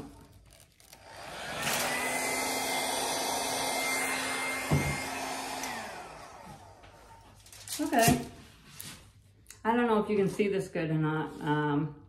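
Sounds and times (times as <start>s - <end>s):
hair dryer blowing: 1.0s - 7.4s.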